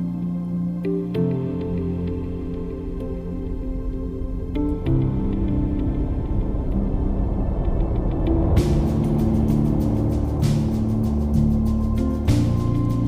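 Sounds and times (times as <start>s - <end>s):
calm instrumental music: 0.0s - 13.0s.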